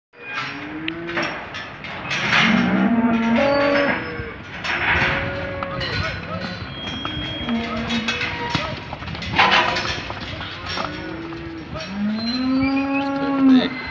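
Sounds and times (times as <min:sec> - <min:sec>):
cattle mooing: 0:00.4 - 0:01.4, 0:02.3 - 0:08.8, 0:10.7 - 0:13.9.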